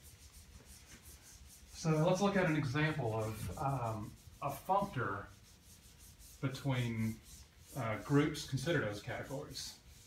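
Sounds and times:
eraser wiping whiteboard: 0:00.0 - 0:10.0.

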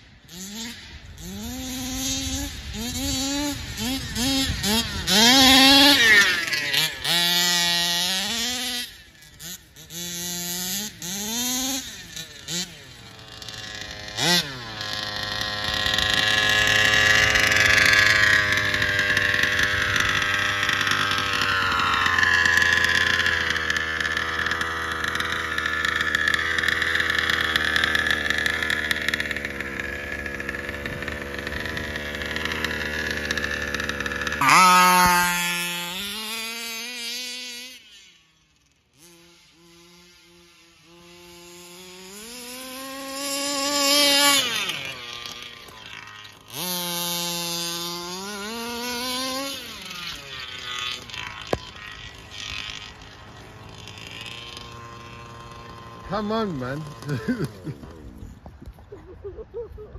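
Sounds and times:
rc buggy engine revving: 0:00.0 - 0:59.6.

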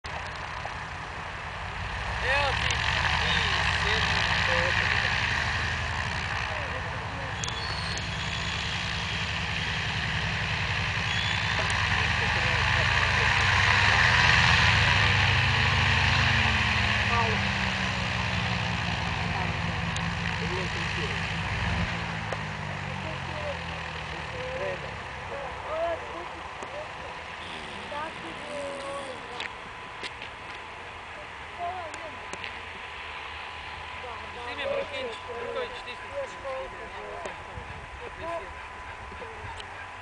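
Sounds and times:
biplane radial engine running: 0:00.1 - 0:40.0.

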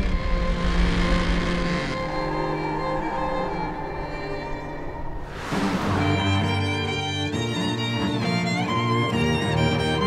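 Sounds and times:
orchestral string music: 0:00.0 - 0:10.0
tyres spinning rushing noise: 0:00.4 - 0:07.4.

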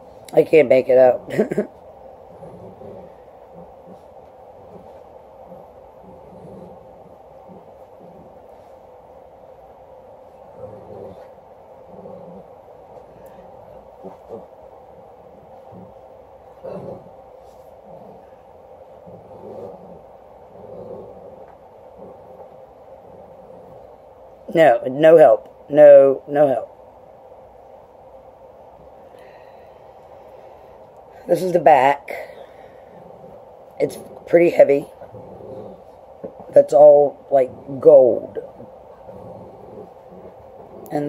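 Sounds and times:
room hum: 0:00.0 - 0:41.0.

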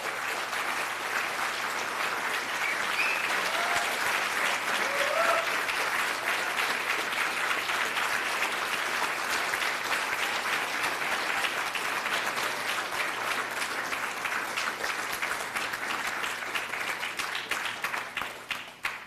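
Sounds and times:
audience applauding: 0:00.0 - 0:19.0
faint voices and cheers: 0:02.7 - 0:05.7.

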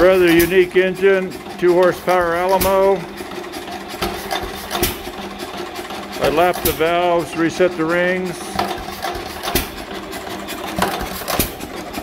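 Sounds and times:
engine knocks: 0:00.0 - 0:12.0
hit-and-miss engine running: 0:00.0 - 0:12.0.

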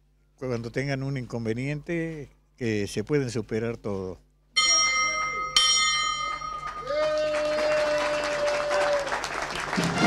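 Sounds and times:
bell clanging: 0:04.6 - 0:06.9
applause: 0:06.6 - 0:10.0
brass band playing: 0:09.7 - 0:10.0.

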